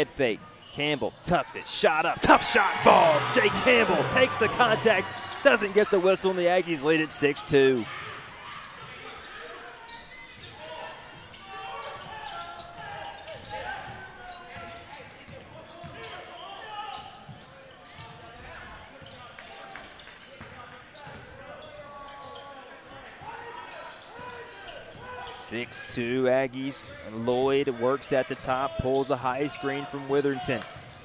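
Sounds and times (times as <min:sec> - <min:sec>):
crowd chatter: 0:01.7 - 0:14.6.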